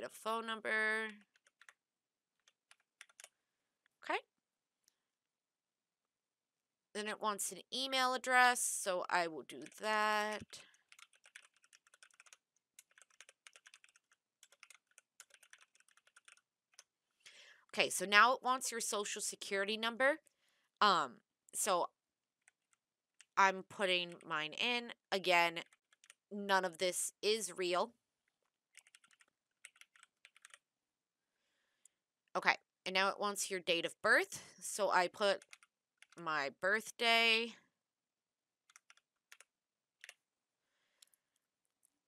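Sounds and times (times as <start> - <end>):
typing on computer keyboard: 1.2 - 1.8, 2.4 - 3.3, 9.5 - 16.9, 25.6 - 26.2, 28.7 - 30.6, 35.4 - 36.2, 38.7 - 40.2.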